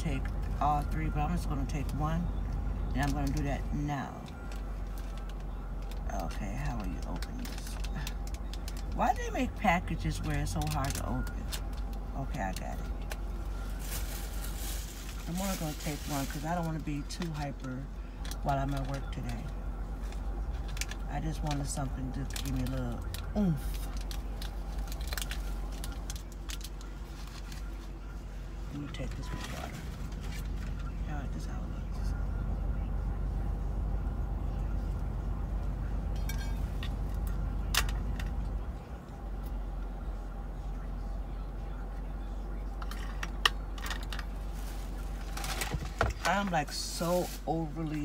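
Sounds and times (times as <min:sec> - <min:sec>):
steady low hum: 0:00.0 - 0:48.0
soft rustles: 0:13.1 - 0:16.7.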